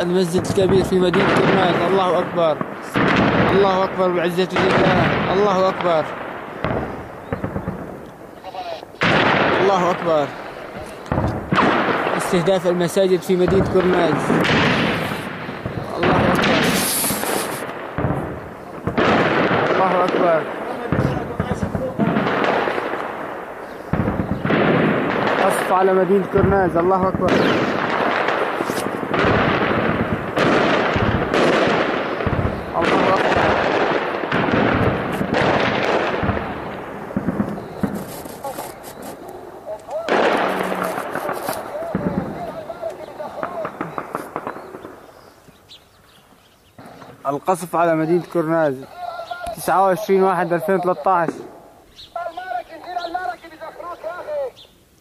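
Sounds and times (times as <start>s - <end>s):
rapid gunfire crackle: 0.0s - 45.2s
shell explosions rumbling: 0.0s - 45.7s, 46.7s - 54.6s.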